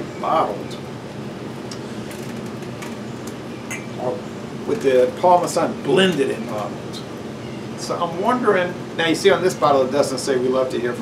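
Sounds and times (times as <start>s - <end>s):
steady background hum and hiss: 0.0s - 11.0s.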